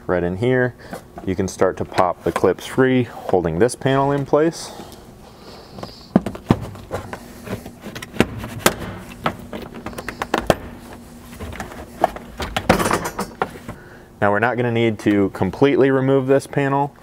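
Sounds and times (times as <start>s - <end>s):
faint steady hum: 0.0s - 17.0s
plastic rustling and scraping: 5.5s - 12.4s.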